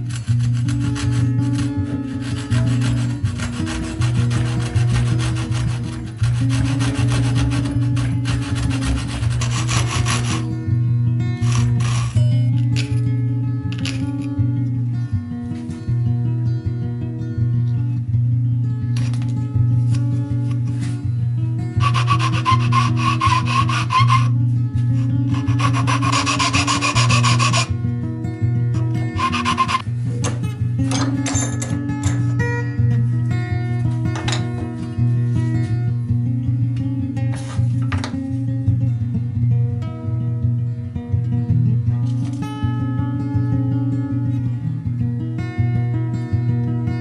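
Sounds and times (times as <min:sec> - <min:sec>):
pull saw cutting wood: 0:00.0 - 0:10.5, 0:11.4 - 0:12.2, 0:21.8 - 0:27.7, 0:28.8 - 0:29.8
guitar music: 0:00.0 - 0:47.0
sandpaper scratching on wood: 0:00.1 - 0:10.4, 0:21.8 - 0:24.3, 0:25.0 - 0:27.7, 0:29.2 - 0:29.8.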